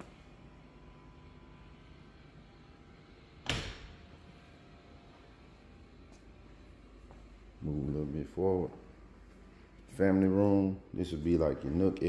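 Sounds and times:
door slamming shut: 3.4 - 4.1.

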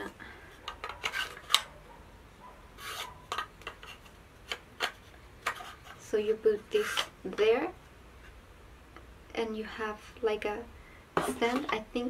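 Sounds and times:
rubbing and rustling of handled pieces: 0.0 - 1.8, 2.8 - 8.4.

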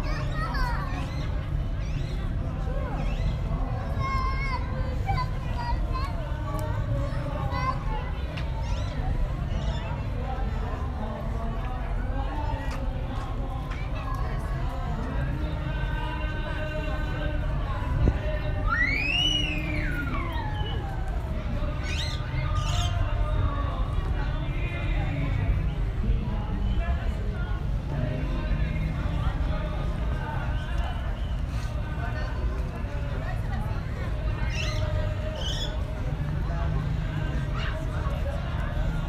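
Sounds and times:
young children's voices: 0.0 - 1.5, 3.8 - 9.1
outdoor background noise: 0.0 - 39.0
people talking: 0.0 - 39.0.

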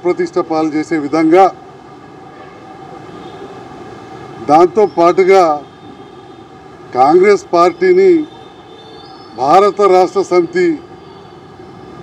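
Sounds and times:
man speaking: 0.0 - 1.6, 4.4 - 5.7, 6.9 - 8.3, 9.4 - 10.9.

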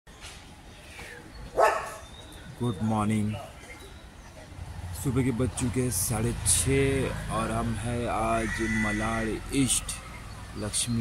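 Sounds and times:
dog barking: 1.6 - 2.0.

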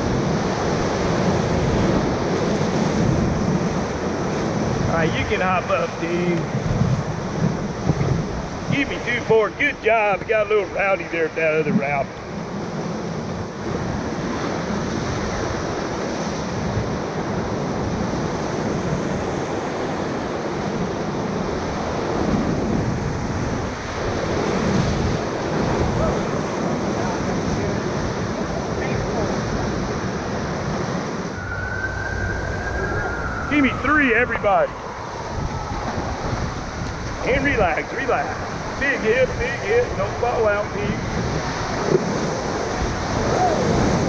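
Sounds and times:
whitewater rapids roaring: 0.0 - 44.0
wind buffeting microphone: 0.0 - 44.0.

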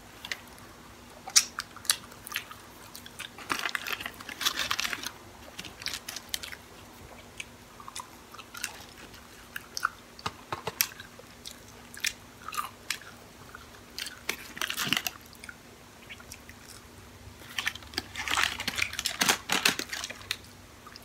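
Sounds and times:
chewing fries close up: 0.2 - 21.0.

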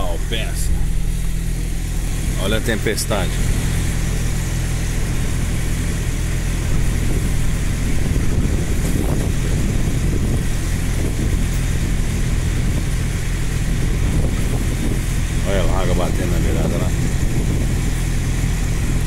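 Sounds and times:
engine droning: 0.0 - 19.0
storm wind: 0.0 - 19.0
rain: 3.4 - 16.2, 16.8 - 19.0.

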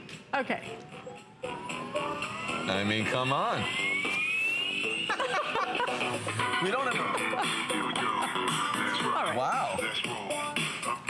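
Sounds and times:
wavering electronic sounds: 0.8 - 10.0
rising synth tone: 0.9 - 9.0.

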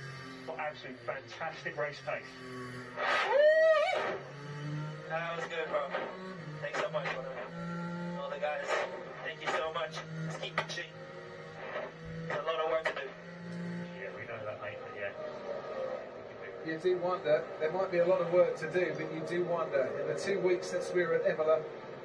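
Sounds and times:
steady low hum: 0.0 - 22.0
driver's voice over tinny radio: 0.4 - 2.8, 5.0 - 21.8.

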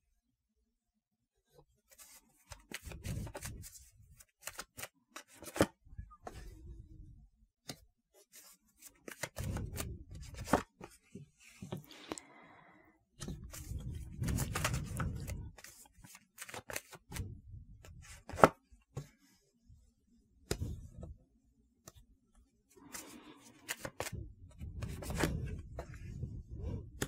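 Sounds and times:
cards flicking and rustling: 1.9 - 5.8, 7.7 - 11.8, 13.2 - 19.1, 22.8 - 27.0.

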